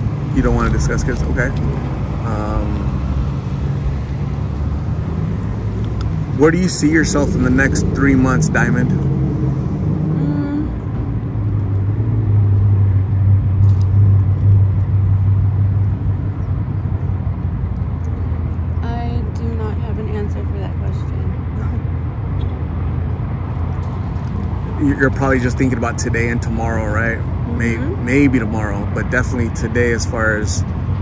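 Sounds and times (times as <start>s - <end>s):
car engine running: 0.0s - 31.0s
outdoor background noise: 0.0s - 31.0s.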